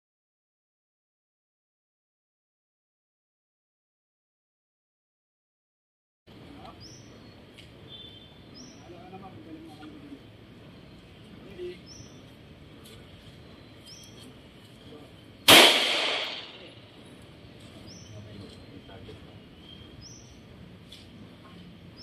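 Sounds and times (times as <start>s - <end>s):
outdoor background noise: 6.3s - 22.0s
handgun shot with echo: 15.5s - 16.7s.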